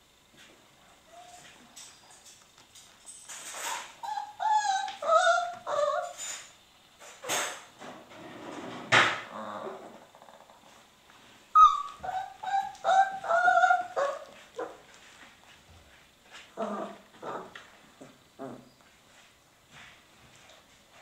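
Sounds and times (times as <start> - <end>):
puppy whining and yipping: 3.6 - 6.3, 11.6 - 14.8.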